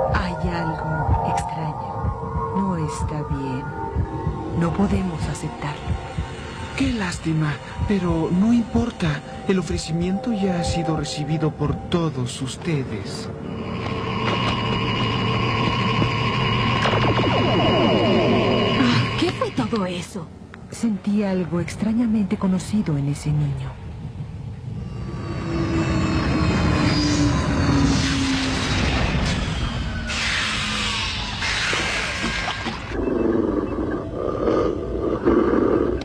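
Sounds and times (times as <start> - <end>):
electronic drone with high tones: 0.0 - 19.7, 24.8 - 34.8
cartoon wolf growling: 32.9 - 36.0.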